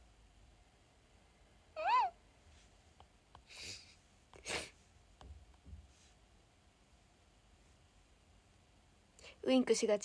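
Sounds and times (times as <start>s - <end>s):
high-pitched vocal call: 1.8s - 2.2s.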